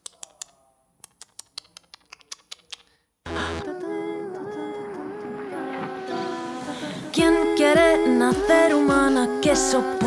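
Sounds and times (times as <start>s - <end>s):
sharp dry clicks: 0.0s - 2.9s.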